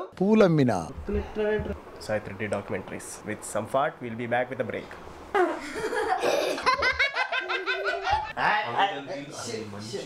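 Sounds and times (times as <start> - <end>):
person laughing: 5.4 - 8.3.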